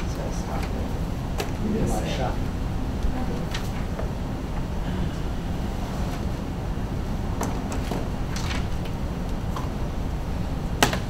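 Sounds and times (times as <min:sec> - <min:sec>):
low room rumble: 0:00.0 - 0:11.0.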